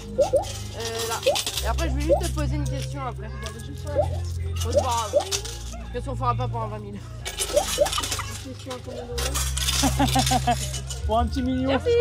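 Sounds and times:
metal tokens clinking in hand: 0.0s - 5.9s, 7.2s - 11.3s.

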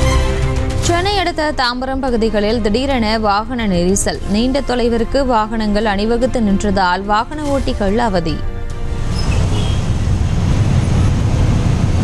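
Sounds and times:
traffic rumble: 8.0s - 12.0s.

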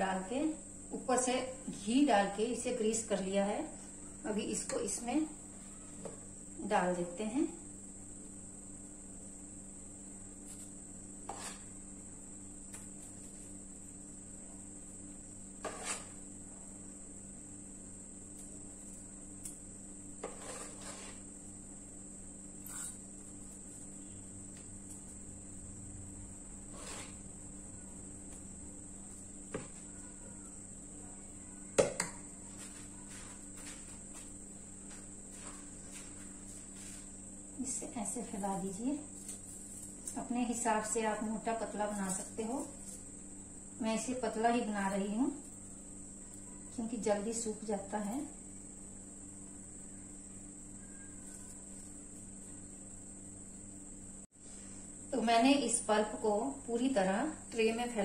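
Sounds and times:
steady low hum: 0.0s - 58.0s
spoon knocking and scraping metal pot: 15.6s - 16.2s, 20.2s - 21.2s.

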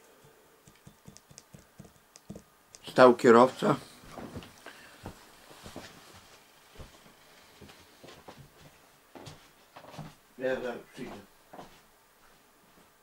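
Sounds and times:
faint knocks and rustles: 4.0s - 10.2s, 11.0s - 13.0s.

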